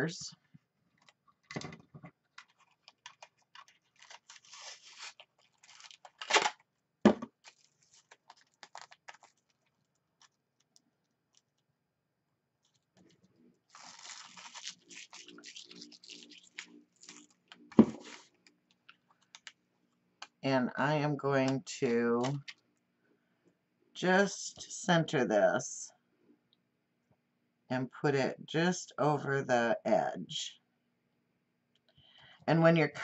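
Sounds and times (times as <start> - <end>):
paper crinkling and tearing: 2.3 - 6.6, 7.4 - 11.6, 12.6 - 18.5
paper rustling: 2.3 - 6.6, 7.3 - 11.6, 12.6 - 18.5.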